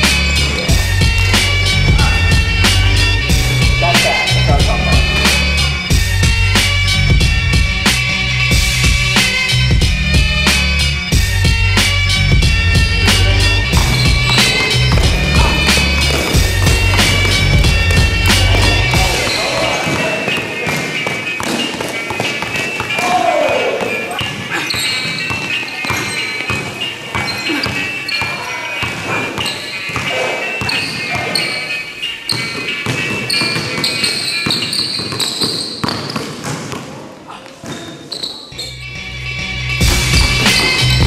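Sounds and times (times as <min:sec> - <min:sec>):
music with heavy bass beat: 0:00.0 - 0:19.5, 0:39.5 - 0:41.0
basketball dribbling on gym floor: 0:13.7 - 0:23.0, 0:32.3 - 0:36.9, 0:39.8 - 0:40.9.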